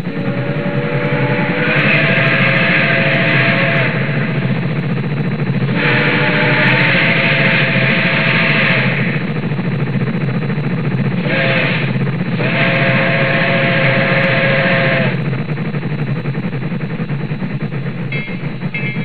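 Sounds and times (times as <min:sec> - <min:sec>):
held tone: 0:18.0 - 0:19.0.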